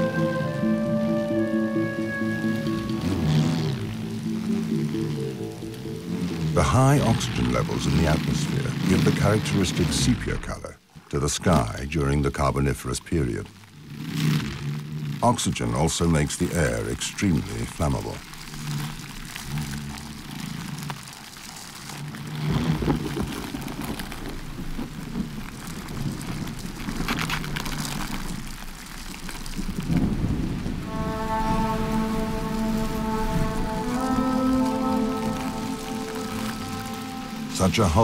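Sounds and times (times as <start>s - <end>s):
held music chords: 0.0s - 8.9s, 30.7s - 38.0s
steady rain: 0.0s - 38.0s
thunder rumbling: 22.1s - 38.0s.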